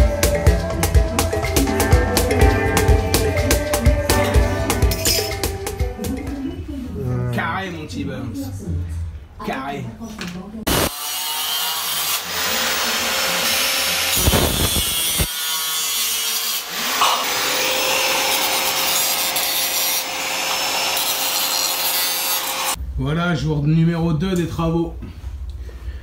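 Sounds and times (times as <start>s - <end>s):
angle grinder cutting metal: 10.7s - 22.8s.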